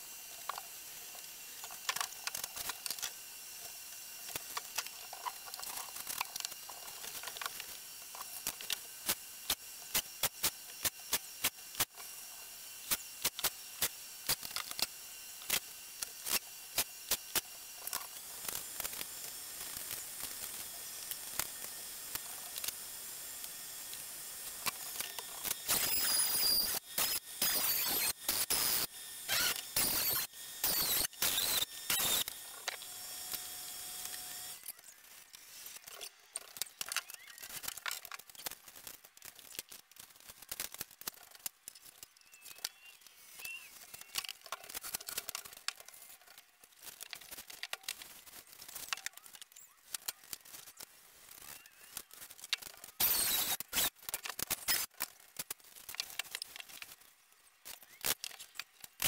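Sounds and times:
cordless drill driving screws: 24.6 - 34.7, 53.0 - 54.0.

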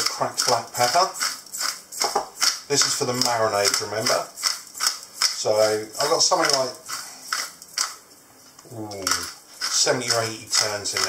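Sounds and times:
pepper mill grinding: 0.0 - 8.1, 8.9 - 11.0.

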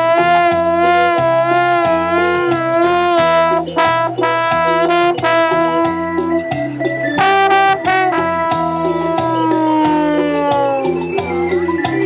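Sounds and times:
trombone solo: 0.0 - 6.5, 7.2 - 11.0
cumbia band bass and rhythm: 0.0 - 12.0.

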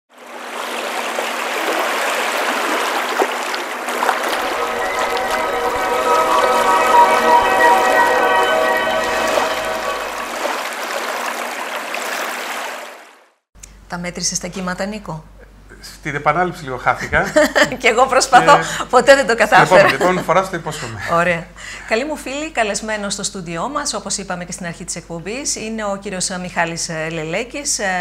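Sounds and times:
held musical chord: 3.9 - 10.8.

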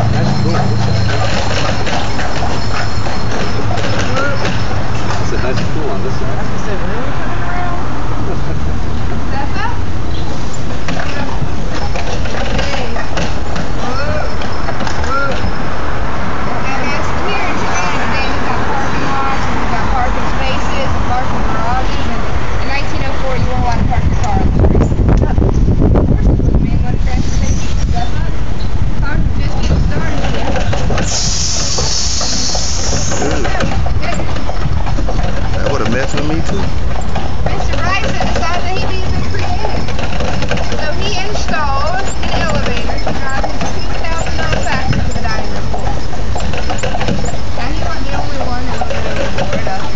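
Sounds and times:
horse hooves clip-clopping: 0.0 - 6.0, 9.4 - 25.3, 29.4 - 49.9
carriage rolling: 0.0 - 6.7, 10.2 - 23.6, 29.4 - 49.9
steady low rumble: 0.0 - 14.4, 15.1 - 31.9
indistinct voices: 0.0 - 49.9
street traffic noise: 0.0 - 49.9.

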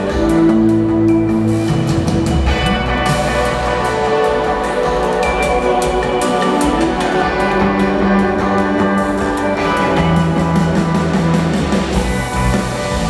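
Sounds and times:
electric guitars: 0.0 - 13.0
keyboards: 0.0 - 13.0.

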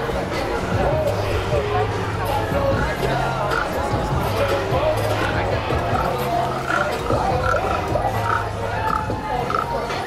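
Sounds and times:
crowd voices: 0.0 - 10.0
music with steady bass line: 0.0 - 10.0.

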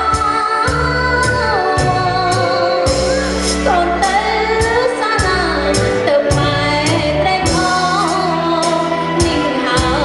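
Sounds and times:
amplified backing music with beat: 0.0 - 10.0
woman singing into a microphone: 0.0 - 10.0.

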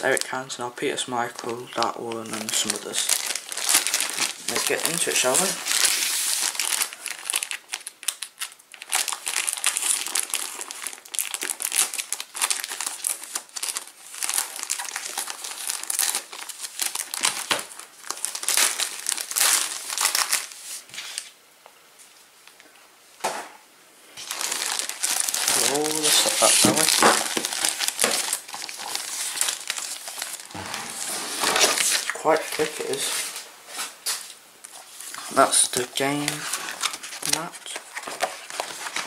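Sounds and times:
foil packaging crinkling: 0.0 - 0.3, 0.9 - 21.4, 24.2 - 39.0.

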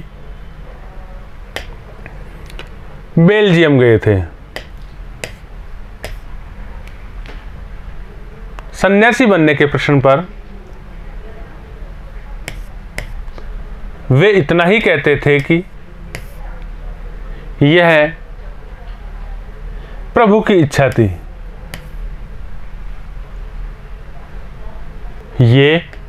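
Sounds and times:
low steady hum: 0.0 - 26.0
sharp click: 1.6 - 1.8.

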